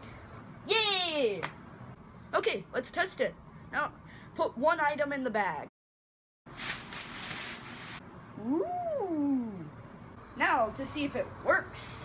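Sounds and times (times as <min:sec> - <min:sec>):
person vocalizing ooh: 0:08.4 - 0:09.7.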